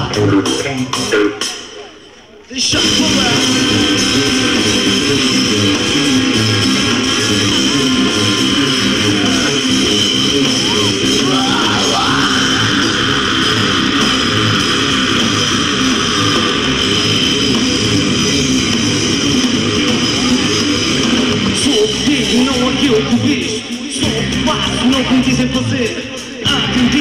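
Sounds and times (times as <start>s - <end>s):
live rock band playing: 2.8s - 27.0s.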